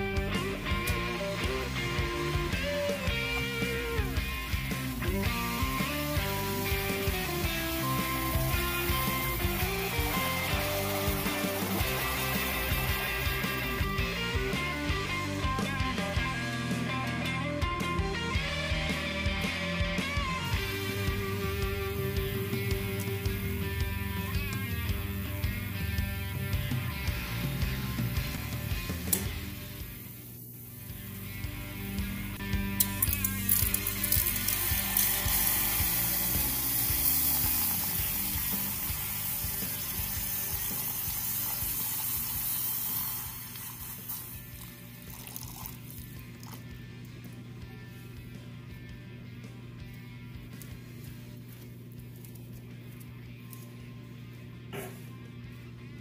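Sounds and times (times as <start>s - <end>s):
background music with steady beat: 0.0s - 56.0s
water pouring into a canister: 3.7s - 14.1s, 33.0s - 46.7s.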